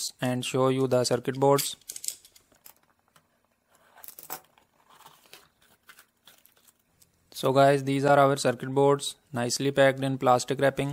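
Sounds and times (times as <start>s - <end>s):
bubble wrap crinkling: 4.4s - 7.2s.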